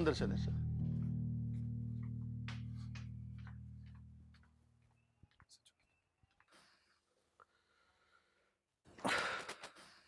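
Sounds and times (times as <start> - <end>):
low sustained chord: 0.0 - 4.8.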